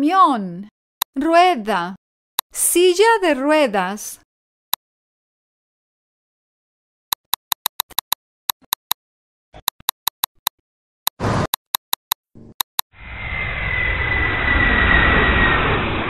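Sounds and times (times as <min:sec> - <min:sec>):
jet airplane roar: 0:13.0 - 0:16.0.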